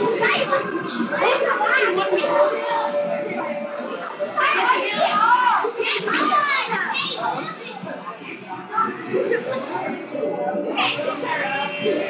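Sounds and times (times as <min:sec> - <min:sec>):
children shouting and squealing: 0:00.0 - 0:07.8.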